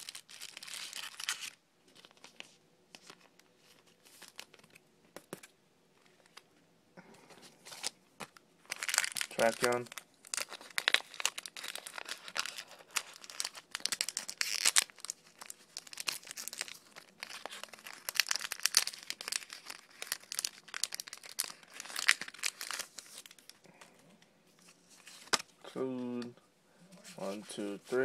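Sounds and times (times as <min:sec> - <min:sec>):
plastic wrapper crinkling and tearing: 0:00.0 - 0:04.8, 0:07.6 - 0:23.7.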